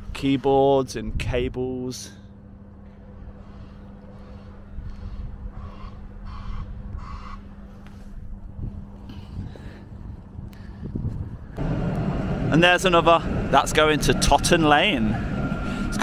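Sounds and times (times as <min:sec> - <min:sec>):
low hum: 0:00.0 - 0:16.0
distant road traffic rumbling: 0:11.6 - 0:16.0.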